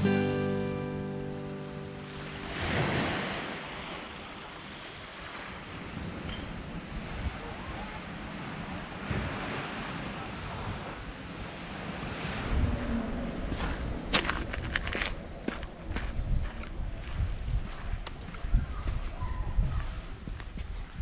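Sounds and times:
waves washing on sandy shore: 1.6 - 14.3
wind on microphone: 2.4 - 21.0.

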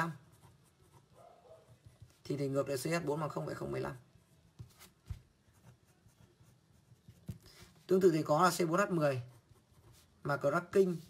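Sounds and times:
ballpoint pen writing on paper: 0.2 - 2.3.

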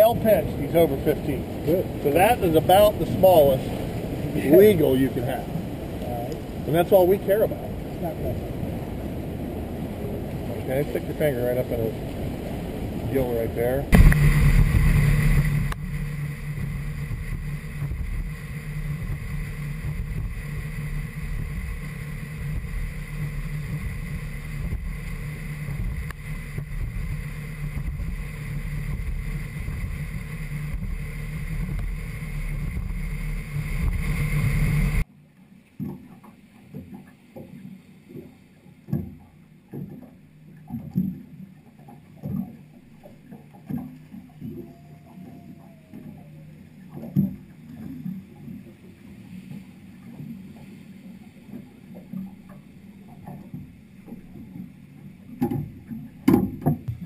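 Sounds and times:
hull noise: 0.0 - 35.1, 41.8 - 57.0
outboard engine drone: 0.0 - 57.0
wind: 0.0 - 57.0
small knocks against hull: 13.9 - 34.4, 35.7 - 57.0.

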